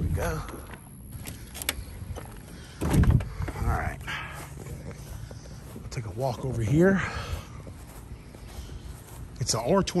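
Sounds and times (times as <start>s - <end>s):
steady low rumble: 0.0s - 9.9s
footsteps on grass: 0.6s - 10.0s.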